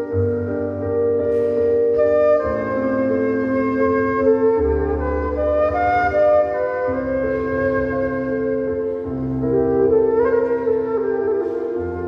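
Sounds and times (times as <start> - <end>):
low sustained backing chords: 0.0 - 12.0
woodwind melody: 0.0 - 12.0.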